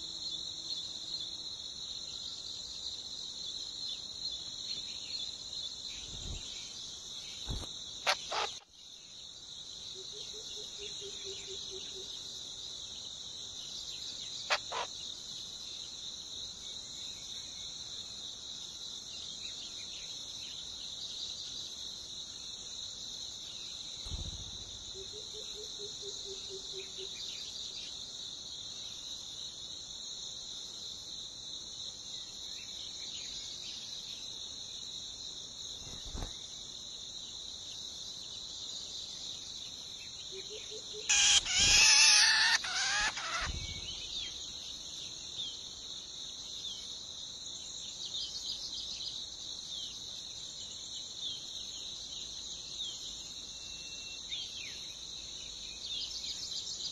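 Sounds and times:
high-pitched insect chorus: 0.0s - 56.9s.

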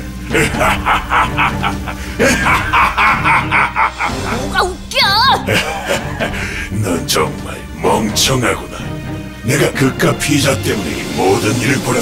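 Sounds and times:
background music: 0.0s - 12.0s
cartoon villain laughing: 0.3s - 6.5s.

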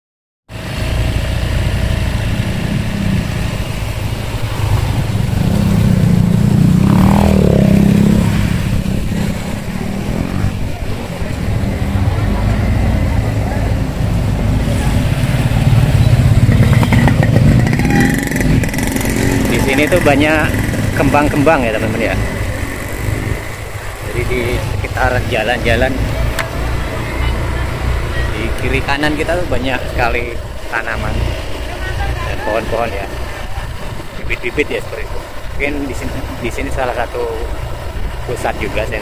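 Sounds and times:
motorcycle engine rumbling: 0.5s - 39.0s.

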